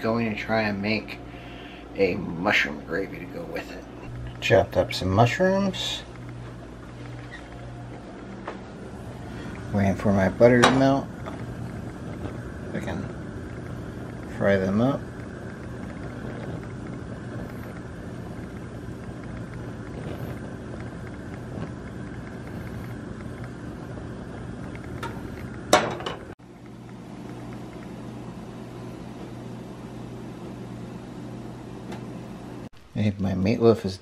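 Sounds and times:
steady low hum: 0:00.0 - 0:34.0.

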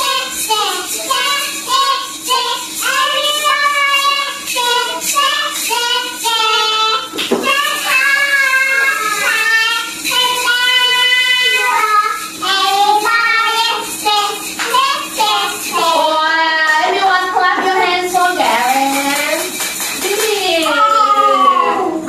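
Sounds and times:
child singing: 0:00.0 - 0:17.0
hand shakers rattling: 0:00.0 - 0:21.4.

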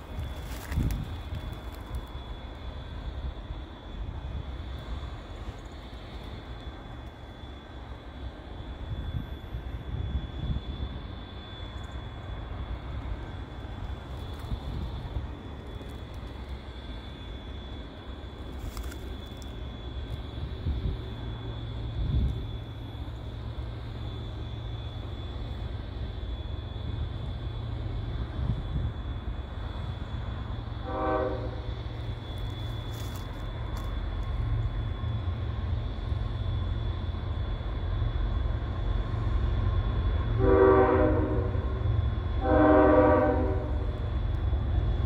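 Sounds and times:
distant freight train rumble: 0:00.0 - 0:45.0.

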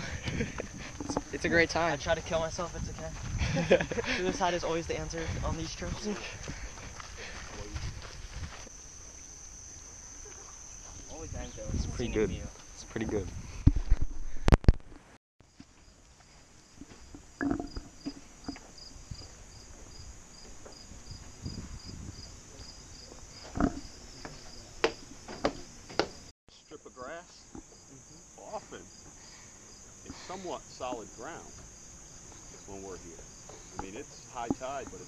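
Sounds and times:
insects trilling: 0:00.0 - 0:13.6, 0:15.4 - 0:35.0.

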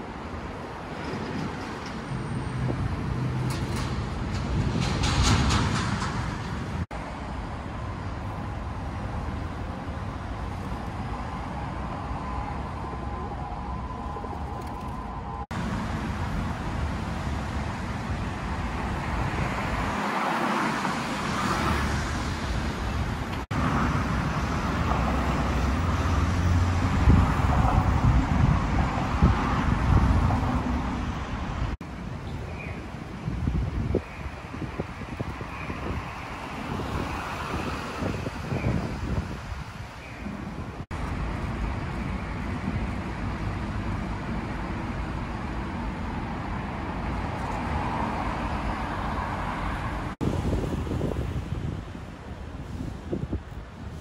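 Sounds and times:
city street traffic: 0:00.0 - 0:54.0.

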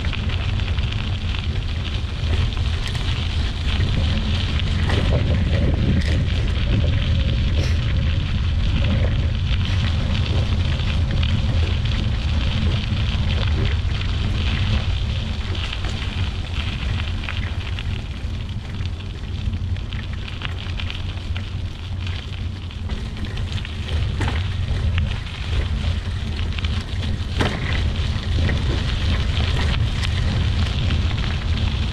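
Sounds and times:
tyres crackling over leaves: 0:00.0 - 0:31.9
wind and tyre rumble: 0:00.0 - 0:31.9.

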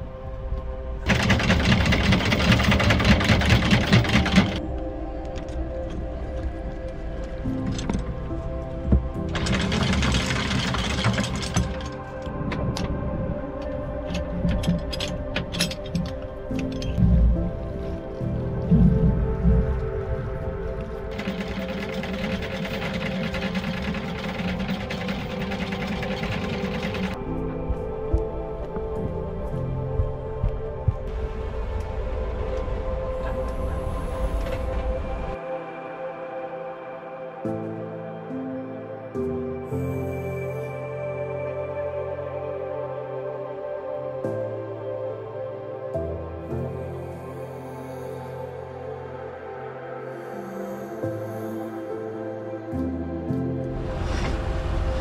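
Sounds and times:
background music: 0:00.0 - 0:55.0
anchor windlass hauling chain: 0:01.0 - 0:04.6, 0:09.3 - 0:13.0, 0:21.1 - 0:27.2.

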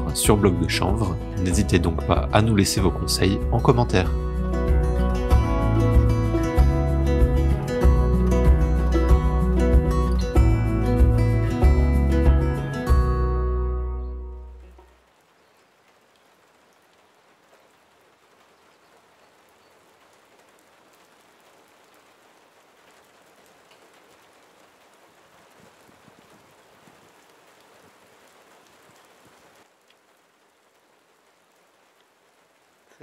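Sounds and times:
steady rain falling: 0:00.0 - 0:13.8, 0:14.5 - 0:33.0
raindrop taps: 0:22.9 - 0:30.1.

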